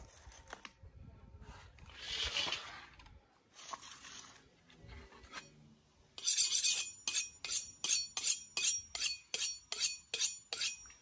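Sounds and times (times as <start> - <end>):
knife scraping on honing rod: 6.2 - 11.0.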